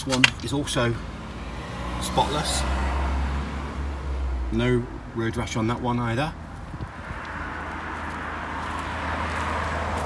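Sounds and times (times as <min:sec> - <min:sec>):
passing vehicles rushing: 0:00.0 - 0:10.0.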